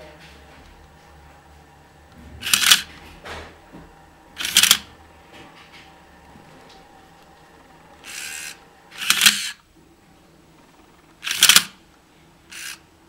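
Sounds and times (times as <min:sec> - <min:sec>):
small electric motor whirring: 0:07.2 - 0:09.6, 0:11.2 - 0:11.7, 0:12.5 - 0:12.8.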